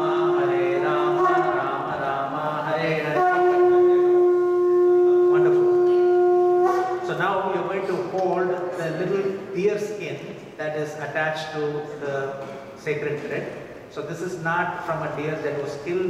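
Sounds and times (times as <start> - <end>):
voices chanting: 0.0 - 4.2
conch shell blowing: 0.0 - 7.8.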